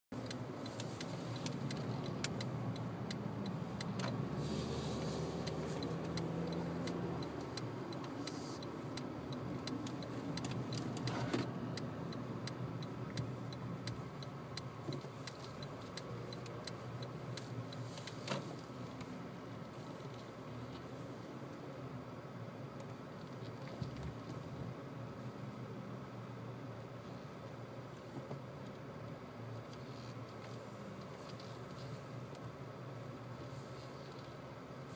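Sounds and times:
car engine and road rumble: 0.1s - 34.9s
light clicks and ticks: 0.2s - 21.0s, 27.0s - 34.8s.

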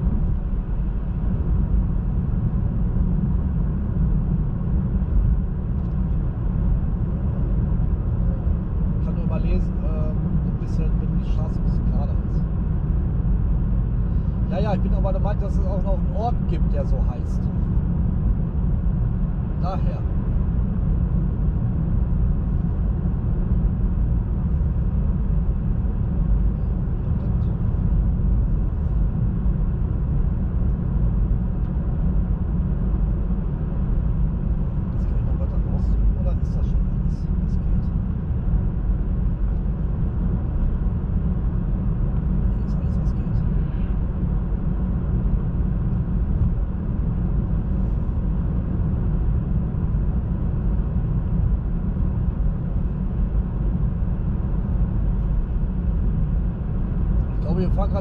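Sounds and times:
tyre and road noise in car cabin: 0.0s - 58.0s.

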